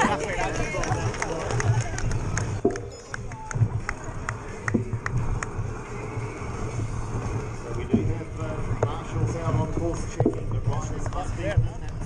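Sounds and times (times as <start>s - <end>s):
bike tyres rolling on gravel: 0.0s - 12.0s
spectators' voices: 0.0s - 12.0s
wind rumble: 0.0s - 12.0s.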